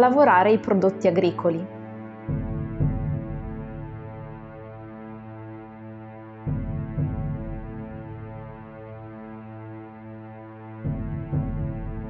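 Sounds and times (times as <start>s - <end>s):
droning chord with low pulse: 1.7s - 12.0s.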